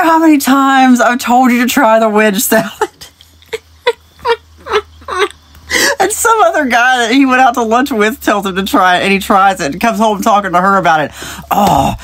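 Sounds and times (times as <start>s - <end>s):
woman laughing breathily: 2.8s - 6.0s.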